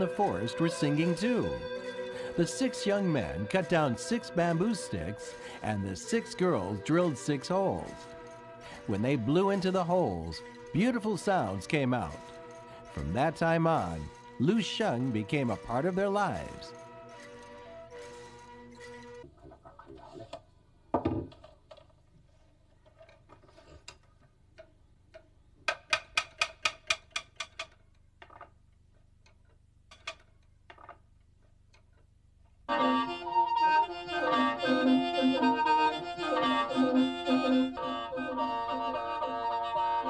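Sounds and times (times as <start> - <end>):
mouth organ chords: 0.0 - 8.1, 13.0 - 16.7, 32.7 - 40.0.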